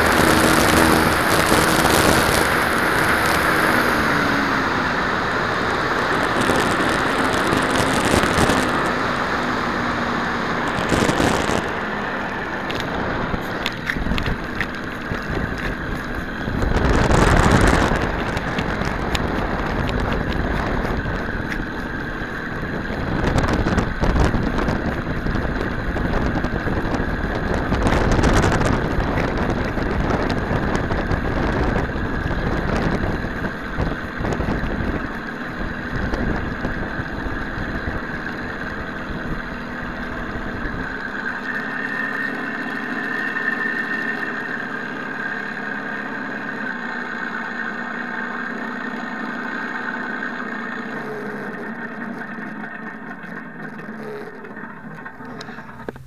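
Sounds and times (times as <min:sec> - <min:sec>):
simulated aircraft engine idling: 0:00.0 - 0:56.0.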